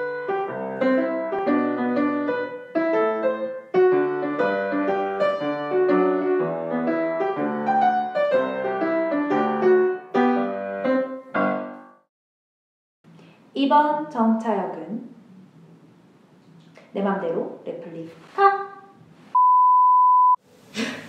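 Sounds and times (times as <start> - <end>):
piano music: 0.0 - 12.1.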